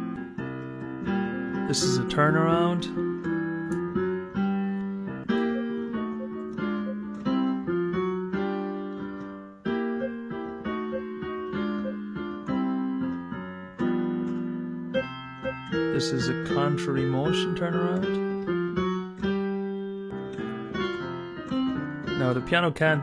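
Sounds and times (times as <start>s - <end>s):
blues piano playing: 0.0s - 23.0s.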